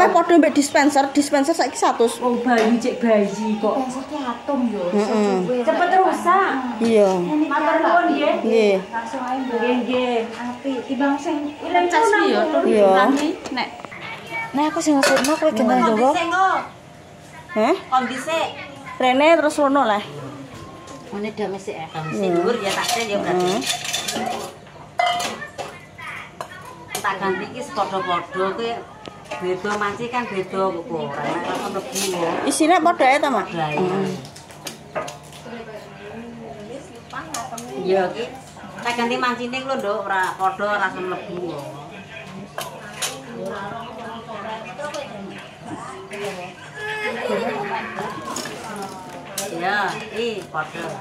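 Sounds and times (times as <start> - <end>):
voices in a small room: 0.0 - 51.0
utensil clinking on ceramic bowls: 22.6 - 25.7.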